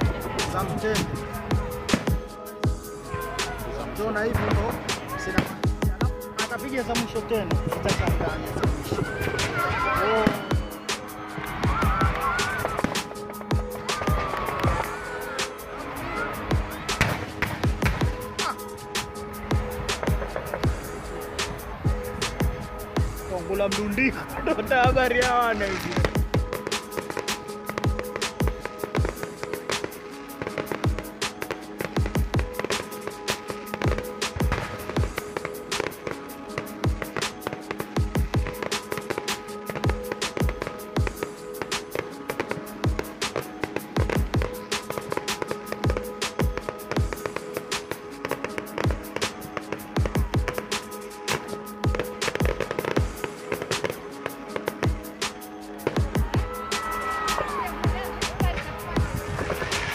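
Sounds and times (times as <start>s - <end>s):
fireworks bangs and crackle: 0.0s - 59.9s
music with heavy beat: 0.0s - 59.9s.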